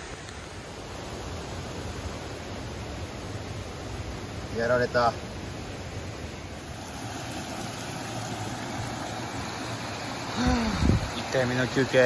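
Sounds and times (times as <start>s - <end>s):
stream running over rocks: 0.0s - 12.0s.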